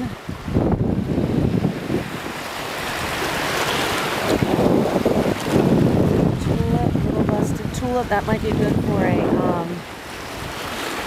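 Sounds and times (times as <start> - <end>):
wind rumbling on microphone: 0.0 - 11.0
seawater sloshing and lapping: 1.2 - 7.2, 8.4 - 11.0.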